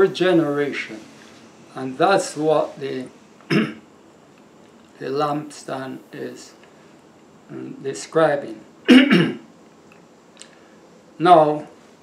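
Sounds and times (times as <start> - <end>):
man coughing: 3.5 - 3.8, 8.9 - 9.4.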